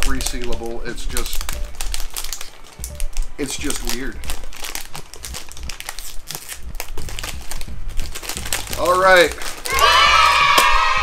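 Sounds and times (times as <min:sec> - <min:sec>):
plastic snack pouch crinkling: 0:00.0 - 0:10.0.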